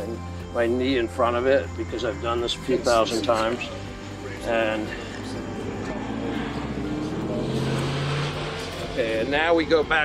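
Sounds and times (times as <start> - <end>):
passing vehicle engine hum: 2.8 - 9.8.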